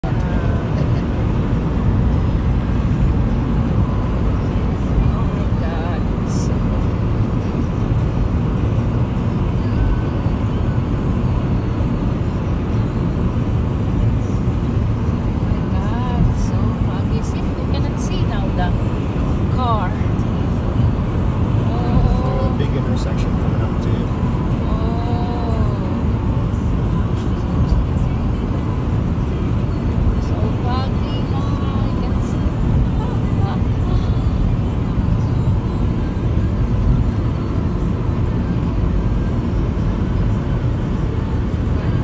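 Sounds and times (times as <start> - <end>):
car road and engine noise: 0.0 - 42.0.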